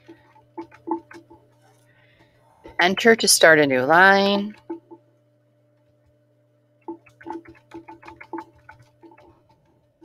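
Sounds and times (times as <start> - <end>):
computer keyboard typing: 6.9 - 9.5.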